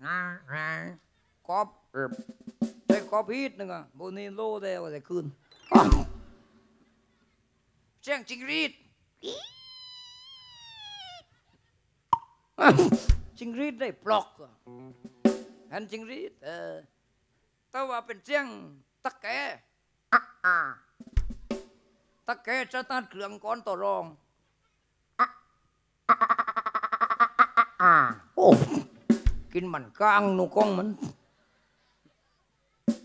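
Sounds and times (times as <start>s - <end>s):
high-pitched cricket call: 9.2s - 11.2s
man imitating gecko rattle: 9.2s - 11.2s, 14.6s - 15.2s, 26.1s - 28.9s.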